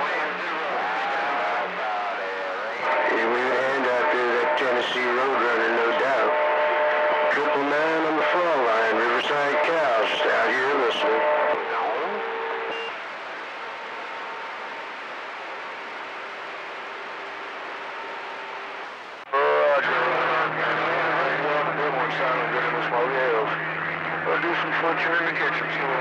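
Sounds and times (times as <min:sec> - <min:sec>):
radio voice: 0:00.0 - 0:12.8, 0:19.3 - 0:26.0
radio band hiss: 0:00.0 - 0:26.0.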